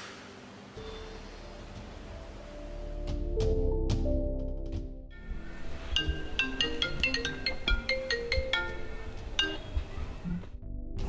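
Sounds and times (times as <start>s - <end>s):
phone ringtone chiming melody: 5.2s - 10.0s.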